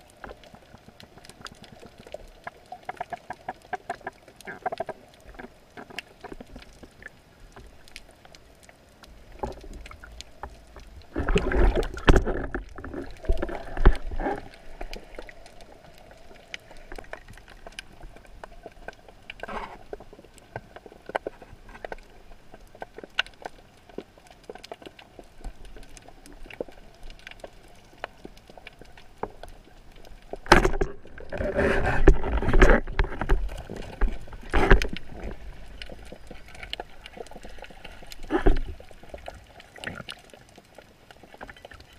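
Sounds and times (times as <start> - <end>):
small scattered clicks underwater: 0.0 - 41.9
underwater ambience: 0.0 - 41.9
water rushing and splashing: 0.0 - 41.9.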